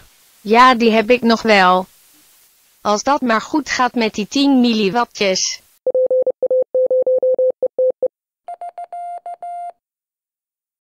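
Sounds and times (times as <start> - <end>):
morse code beeps: 5.9 - 9.7.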